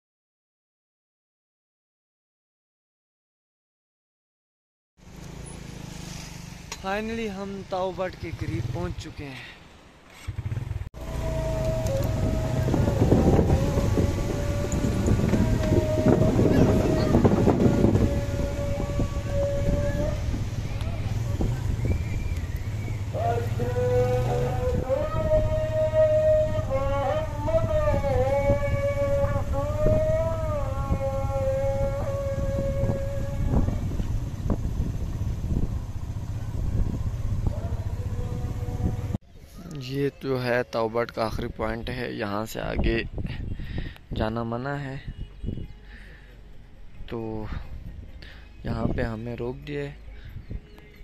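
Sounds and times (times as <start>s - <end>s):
motorcycle engine running: 5.0s - 9.1s, 10.1s - 39.2s
wind rumble on microphone: 10.4s - 39.5s, 41.3s - 45.9s, 50.1s - 51.0s.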